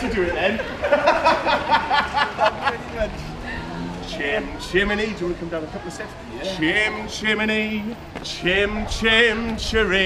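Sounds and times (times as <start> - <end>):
man laughing heartily: 0.4 - 2.9.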